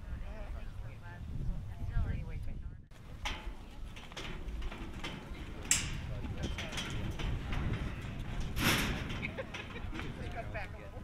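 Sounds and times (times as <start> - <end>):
low outdoor rumble: 0.0 - 11.0
indistinct voices murmuring: 3.0 - 11.0.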